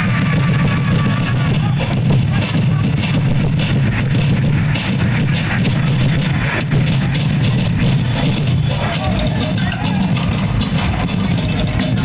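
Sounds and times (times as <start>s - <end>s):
drums and percussion: 0.0s - 12.0s.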